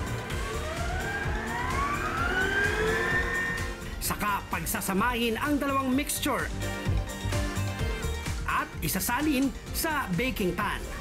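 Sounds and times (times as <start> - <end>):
stand mixer motor whining: 0.0 - 3.9
background music: 0.0 - 11.0.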